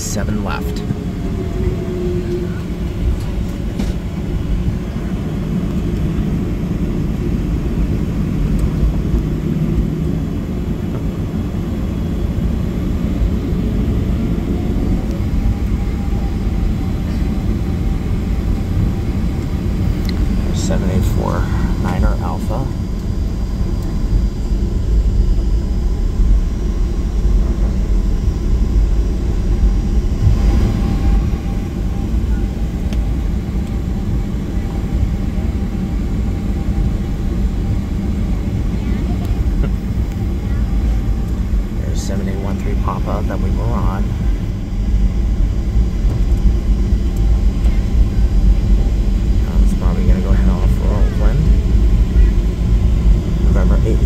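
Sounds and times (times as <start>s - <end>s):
jet engines idling: 0.0s - 54.0s.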